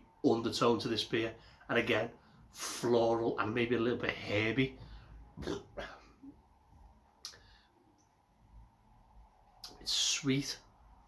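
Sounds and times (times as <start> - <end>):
man breathing: 4.8 - 6.4, 7.3 - 7.9.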